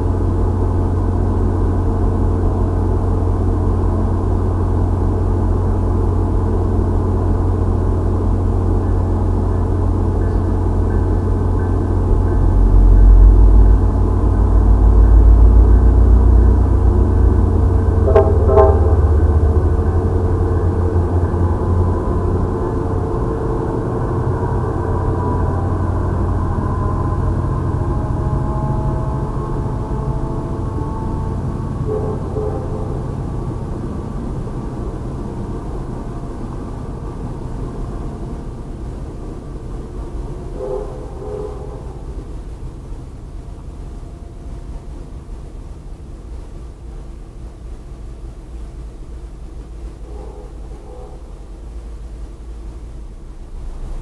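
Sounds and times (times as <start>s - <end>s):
train rumbling past: 0.0s - 54.0s.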